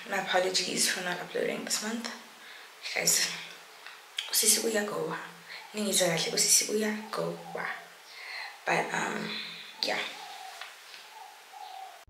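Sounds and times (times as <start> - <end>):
faint bird calls: 5.3 - 12.0.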